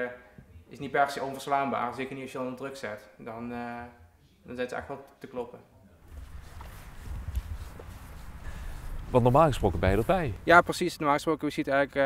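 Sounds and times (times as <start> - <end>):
footsteps on grass: 6.1 - 10.5
low microphone rumble: 6.1 - 10.6.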